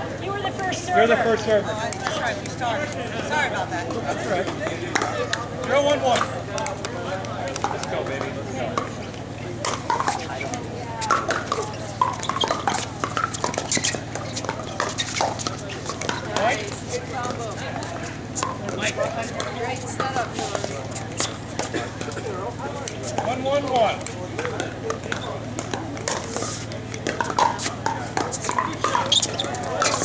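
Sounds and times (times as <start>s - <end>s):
indistinct chatter: 0.0s - 30.0s
paddles popping plastic balls: 9.6s - 18.8s, 22.9s - 30.0s.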